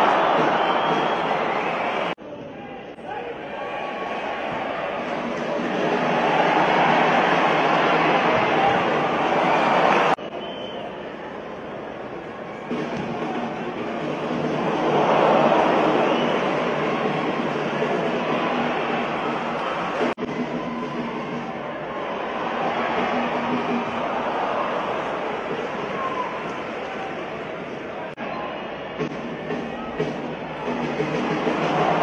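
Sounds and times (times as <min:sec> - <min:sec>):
stadium crowd roar: 0:00.0 - 0:32.0.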